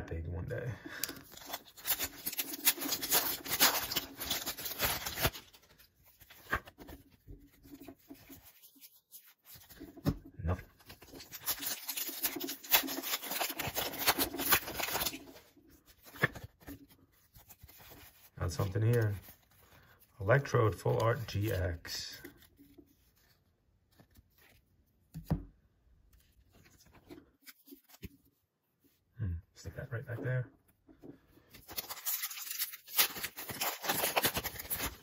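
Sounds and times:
foil wrapper crinkling and tearing: 0.8s - 10.0s, 10.7s - 23.3s, 31.5s - 35.0s.

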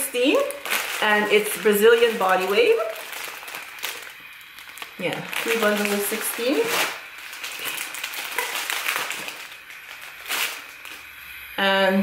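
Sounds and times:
plastic packaging crinkling: 0.0s - 11.3s.

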